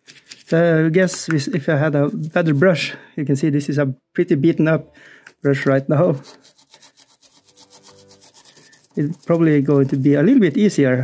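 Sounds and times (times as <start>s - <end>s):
paintbrush scrubbing: 1.4s - 2.9s, 5.5s - 11.0s.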